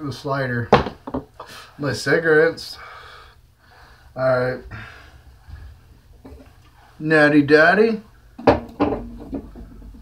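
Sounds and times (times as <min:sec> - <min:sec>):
objects bumping on tabletop: 0:08.4 - 0:10.0
sharp knocks: 0:08.4 - 0:10.0.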